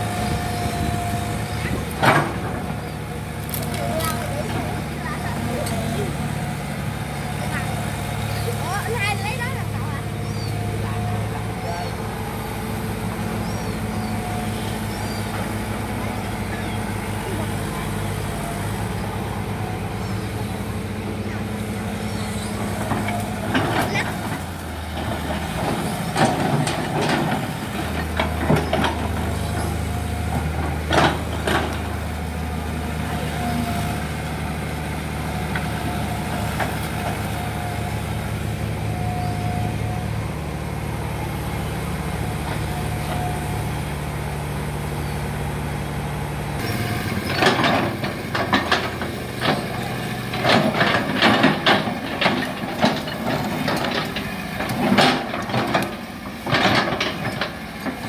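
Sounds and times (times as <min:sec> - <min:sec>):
excavator diesel engine running: 0:00.0 - 0:58.0.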